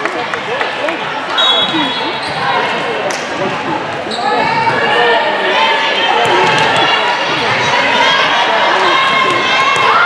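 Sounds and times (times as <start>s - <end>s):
voices talking and calling out: 0.0s - 10.0s
shoes squeaking on court floor: 1.4s - 2.8s.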